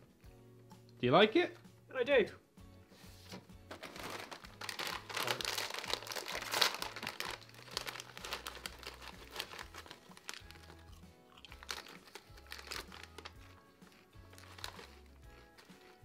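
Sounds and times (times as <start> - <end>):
background music with low bass: 0.0 - 16.0
wrapping paper crumpling: 3.7 - 16.0.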